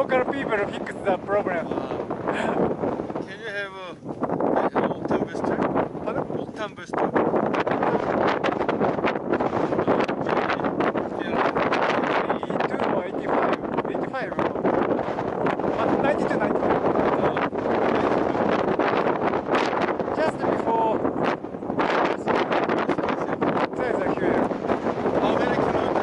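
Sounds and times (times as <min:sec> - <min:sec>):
wind blowing across microphone: 0:00.0 - 0:26.0.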